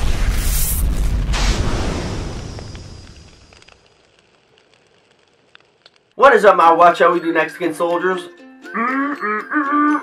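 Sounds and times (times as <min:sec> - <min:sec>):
explosion rumble: 0:00.0 - 0:03.7
faint crackles: 0:00.0 - 0:06.8.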